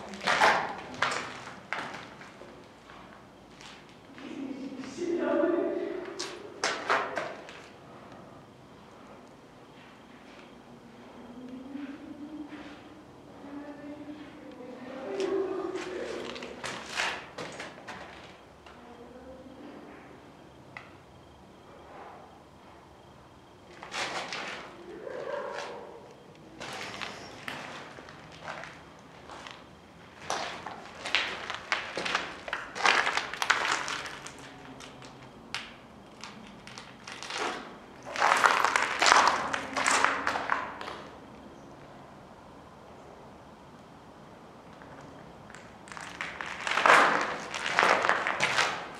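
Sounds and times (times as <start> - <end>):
footsteps on rubble and concrete: 0.0 - 4.2, 26.6 - 35.4, 36.2 - 41.1, 44.8 - 48.9.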